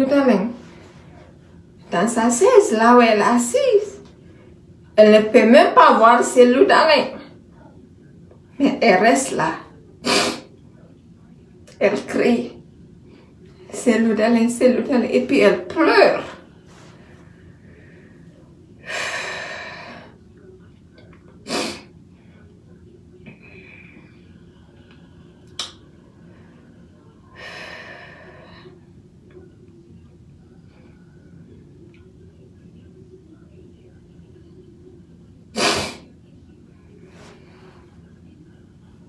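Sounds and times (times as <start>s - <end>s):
woman sneezing: 10.0s - 10.5s, 21.5s - 21.9s, 35.6s - 36.1s
woman breathing heavily: 16.6s - 20.2s, 26.2s - 28.8s.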